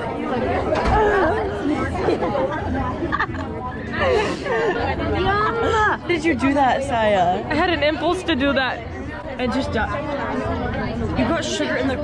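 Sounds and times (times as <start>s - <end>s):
girls talking and laughing: 0.0s - 12.0s.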